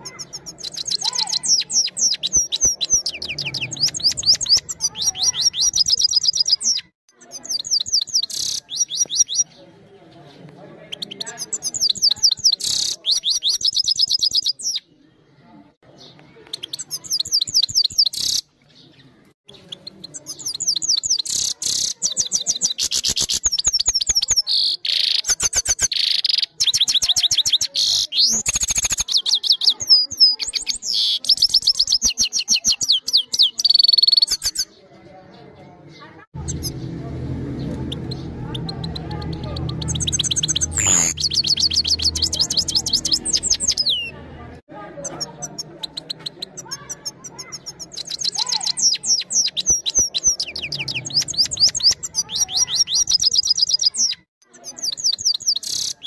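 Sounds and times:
goldfinch singing: 0.0 - 9.6, 36.4 - 44.2, 45.0 - 56.0.

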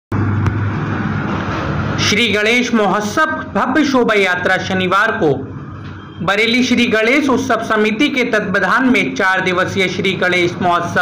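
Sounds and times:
loud low rumbling: 0.1 - 2.6.

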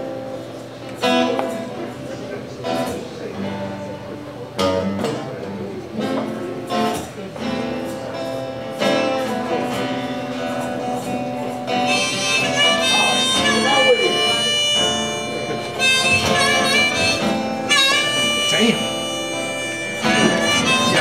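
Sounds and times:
acoustic guitar: 0.0 - 21.0
harmonica: 9.8 - 21.0.

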